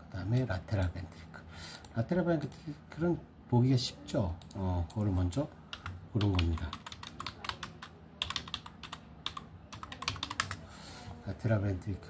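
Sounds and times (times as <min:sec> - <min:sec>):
typing on computer keyboard: 0:05.7 - 0:10.6.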